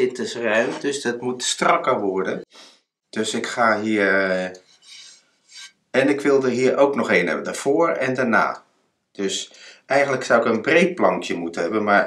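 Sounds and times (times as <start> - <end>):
man speaking: 0.0 - 2.6, 3.2 - 4.6, 6.0 - 8.6, 9.2 - 12.0.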